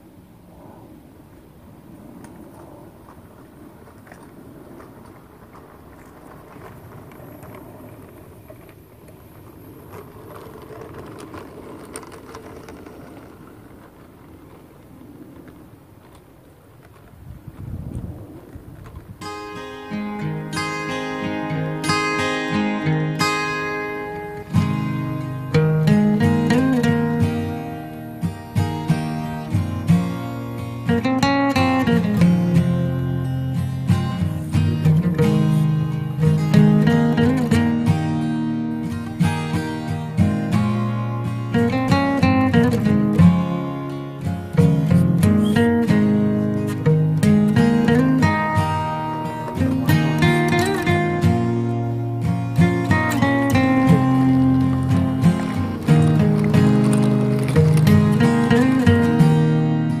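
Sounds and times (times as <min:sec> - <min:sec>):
model train running: 0:04.9 - 0:17.1, 0:19.3 - 1:00.0
strummed acoustic guitar music: 0:19.2 - 1:00.0.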